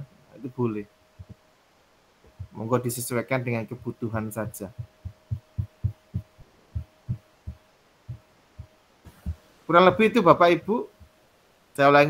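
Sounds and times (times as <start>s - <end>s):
soft low thumps: 1.1s - 1.4s, 2.2s - 2.7s, 3.6s - 10.1s, 10.9s - 11.2s.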